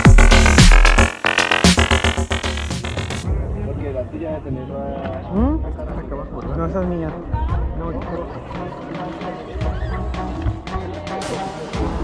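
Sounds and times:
background music with low beat: 0.0 - 4.1.

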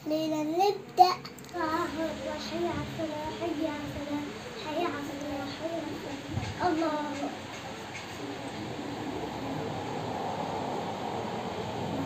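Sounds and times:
child's sing-song voice: 0.0 - 7.5.

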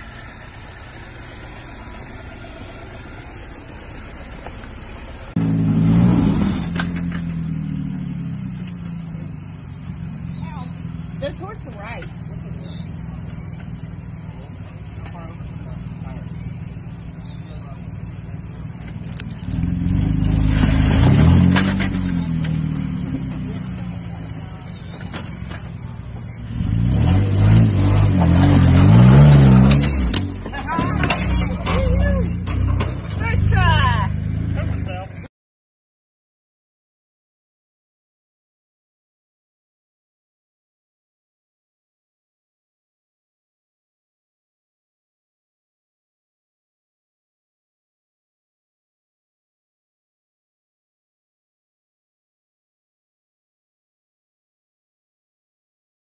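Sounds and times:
engine droning low: 0.0 - 35.3
engine revving hard: 5.3 - 7.0, 19.4 - 23.6, 26.4 - 31.6.

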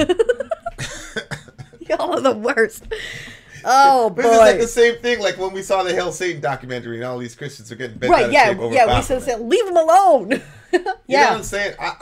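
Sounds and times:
man and woman laughing: 0.0 - 1.9.

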